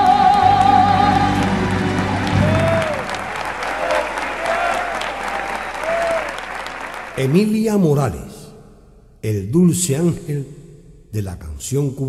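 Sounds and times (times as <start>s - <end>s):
music accompaniment notes: 0.0s - 3.4s
audience applause: 0.0s - 7.6s.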